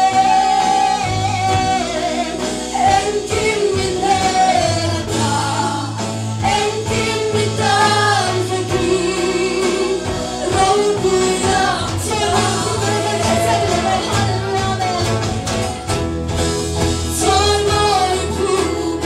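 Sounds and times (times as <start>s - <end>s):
women singing gospel duet: 0.0s - 15.6s, 16.9s - 19.0s
amplified instrumental backing: 0.0s - 19.0s.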